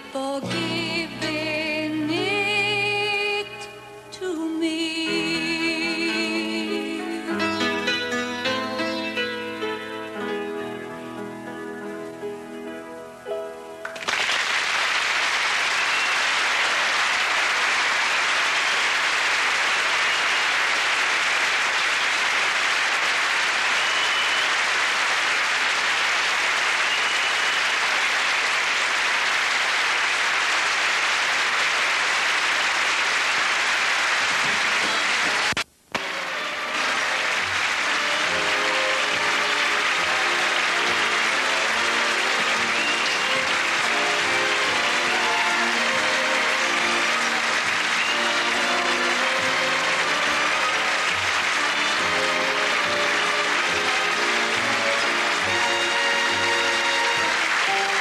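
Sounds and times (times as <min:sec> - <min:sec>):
music playing: 0:04.9 - 0:14.2, 0:34.3 - 0:58.0
audience applauding: 0:13.8 - 0:58.0.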